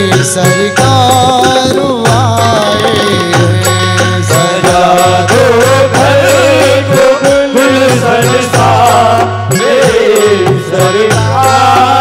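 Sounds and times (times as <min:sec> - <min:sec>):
devotional music: 0:00.0 - 0:12.0
harmonium: 0:00.0 - 0:12.0.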